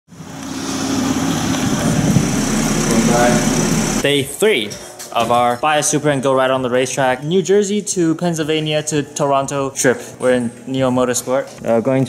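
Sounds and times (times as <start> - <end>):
car engine running: 0.1 - 4.0.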